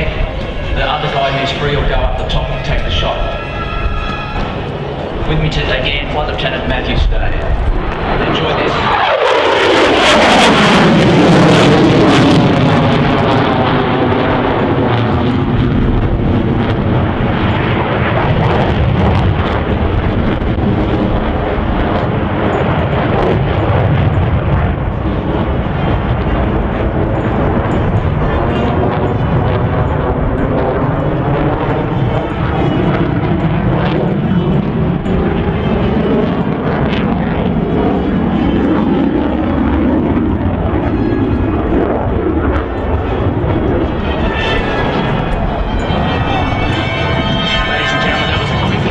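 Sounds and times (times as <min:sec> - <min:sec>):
jet engines roaring: 0:00.0 - 0:48.9.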